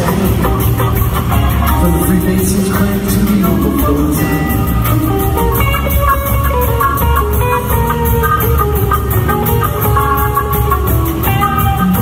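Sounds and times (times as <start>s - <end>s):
bass guitar: 0.0s - 12.0s
drums: 0.0s - 12.0s
electric guitar notes: 0.0s - 12.0s.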